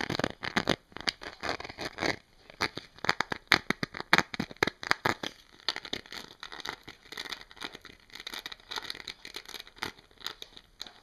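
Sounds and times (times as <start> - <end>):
nails scratching: 0.0 - 11.0.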